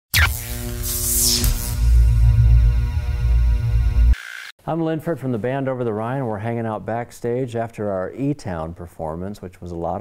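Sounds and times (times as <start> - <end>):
intro music sting with heavy bass: 0.2 - 4.2.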